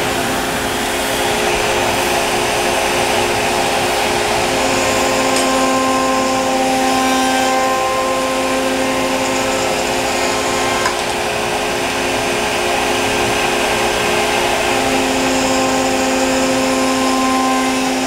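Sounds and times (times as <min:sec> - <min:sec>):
router spindle whine: 0:00.0 - 0:18.0.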